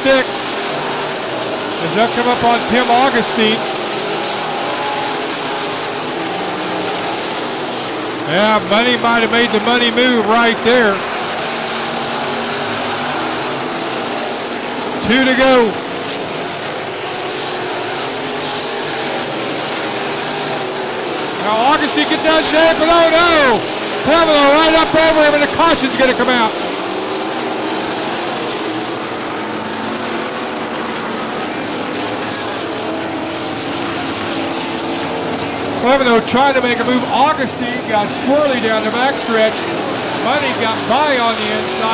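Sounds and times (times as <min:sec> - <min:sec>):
race car engines droning: 0:00.0 - 0:41.9.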